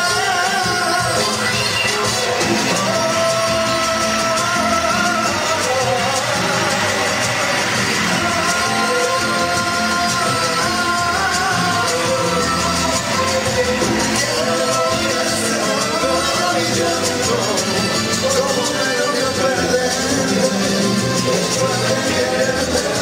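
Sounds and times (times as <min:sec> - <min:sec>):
mariachi band playing: 0:00.0 - 0:23.0
men singing: 0:00.0 - 0:23.0.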